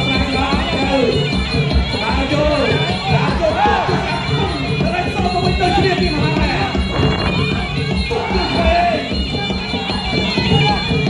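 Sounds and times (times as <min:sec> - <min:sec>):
crowd noise: 0:00.0 - 0:11.0
steady drumming: 0:00.0 - 0:11.0
reedy oboe-like melody: 0:06.6 - 0:11.0.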